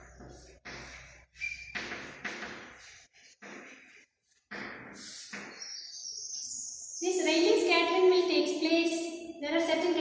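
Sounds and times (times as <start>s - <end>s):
chalk squeak: 1.0s - 2.2s.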